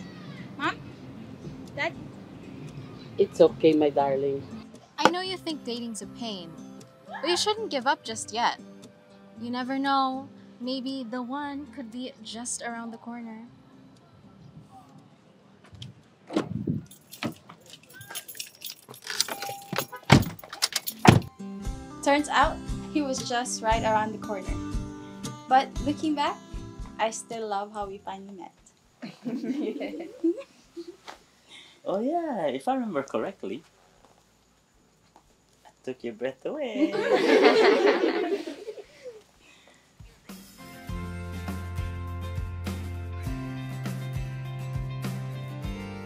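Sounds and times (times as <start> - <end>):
music: 0.0 - 15.1, 20.3 - 28.5, 40.0 - 46.0
woman calling out questions: 7.1 - 8.6
car door thudding shut: 16.3 - 17.4.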